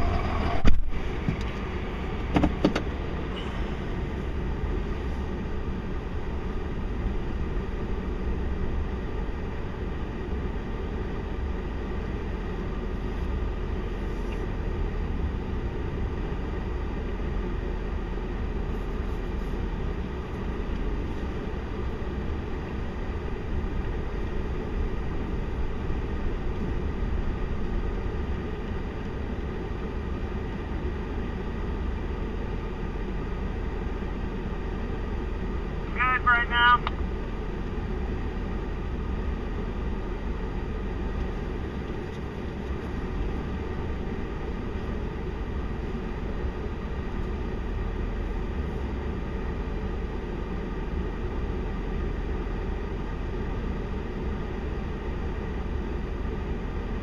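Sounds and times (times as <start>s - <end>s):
diesel truck engines rumbling: 0.0s - 57.0s
faint steady whine: 0.0s - 57.0s.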